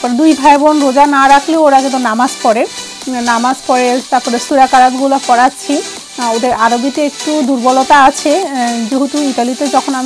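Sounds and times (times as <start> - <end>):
woman talking: 0.0 - 10.0.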